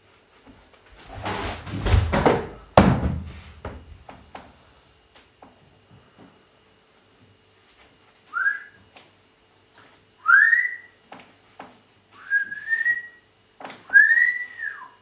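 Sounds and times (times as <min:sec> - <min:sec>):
person whistling rising calls: 0:08.3 - 0:08.8, 0:10.2 - 0:11.0, 0:12.2 - 0:13.3, 0:13.9 - 0:15.0.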